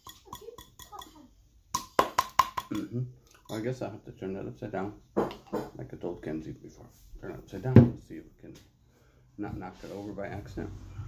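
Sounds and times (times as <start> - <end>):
palm slapping bottle base: 1.7 - 2.8.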